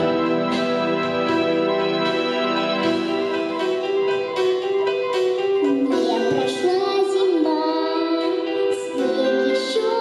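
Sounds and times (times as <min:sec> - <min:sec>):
instrumental accompaniment: 0:00.0 - 0:10.0
girl singing into a microphone: 0:05.7 - 0:10.0.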